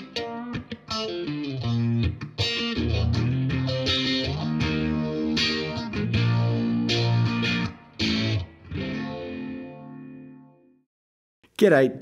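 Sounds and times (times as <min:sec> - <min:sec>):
electric guitar chords strummed: 0:00.0 - 0:10.8.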